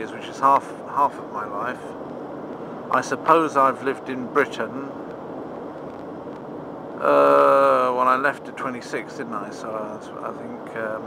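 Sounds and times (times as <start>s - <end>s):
road noise inside car: 0.0s - 11.0s.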